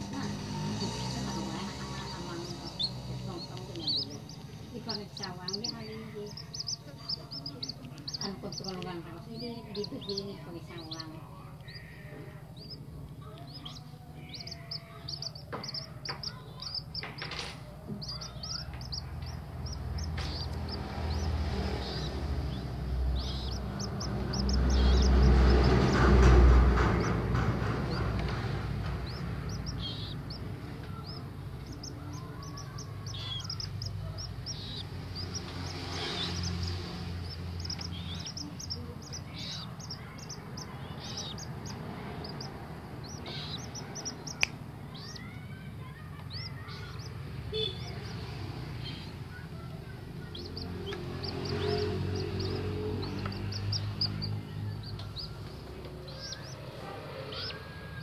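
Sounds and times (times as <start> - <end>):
moorhen chicks peeping: 0.0 - 58.0.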